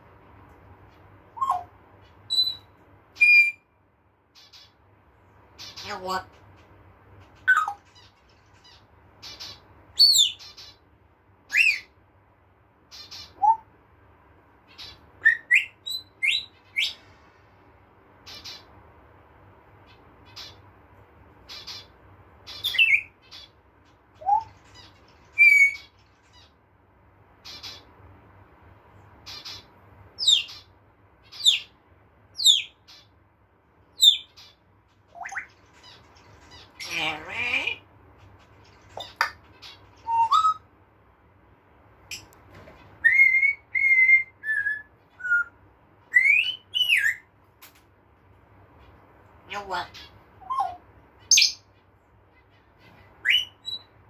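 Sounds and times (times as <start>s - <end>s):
parrot squawks: 1.4s - 1.7s, 2.3s - 3.7s, 5.6s - 6.4s, 7.4s - 10.8s, 12.9s - 13.7s, 14.7s - 17.0s, 24.2s - 26.5s, 34.0s - 37.8s, 39.0s - 40.7s, 43.0s - 45.5s, 49.5s - 51.7s, 52.3s - 53.9s.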